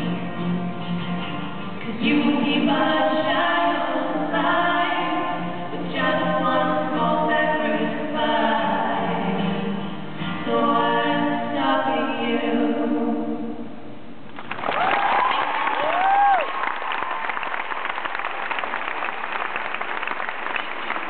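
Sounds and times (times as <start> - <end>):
two people singing slow song: 1.8 - 13.8.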